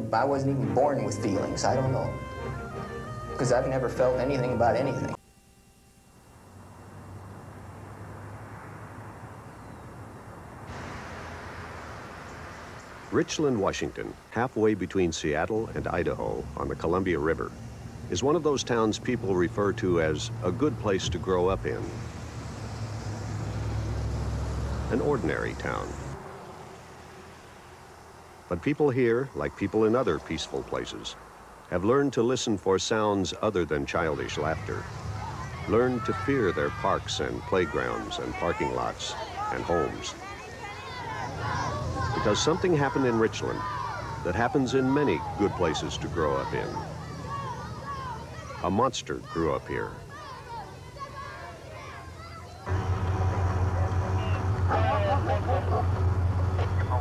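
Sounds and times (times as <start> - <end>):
voices: 0.0 - 5.2, 12.5 - 57.0
street ambience hiss: 0.0 - 57.0
car engine idling: 6.5 - 14.5, 15.2 - 32.3, 33.0 - 57.0
low rumble: 52.7 - 57.0.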